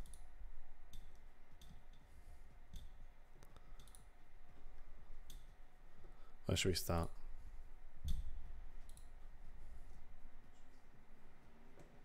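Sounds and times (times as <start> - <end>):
computer mouse clicks: 0.0 - 0.2, 0.9 - 2.1, 2.7 - 4.1, 5.2 - 5.5, 8.1 - 9.2
low background hum: 0.0 - 12.0.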